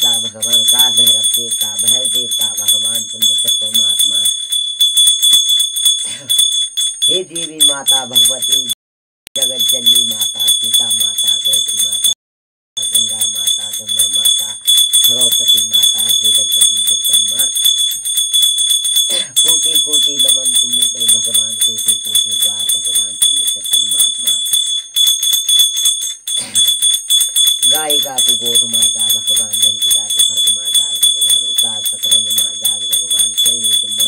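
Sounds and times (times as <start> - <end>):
hand bell ringing rapidly: 0.0 - 8.8, 9.4 - 12.2, 12.8 - 34.0.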